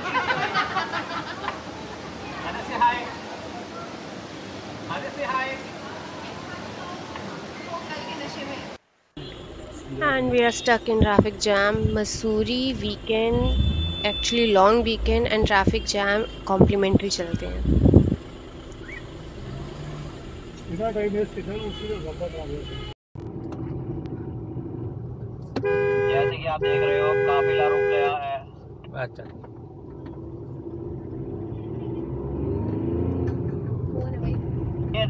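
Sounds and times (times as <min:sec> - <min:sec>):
car engine idling: 0:11.3 - 0:25.9.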